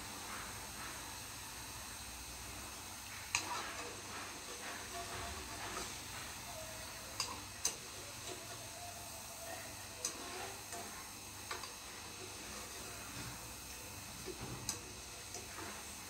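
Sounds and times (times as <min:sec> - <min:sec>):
food frying in hot oil: 0:00.0 - 0:16.0.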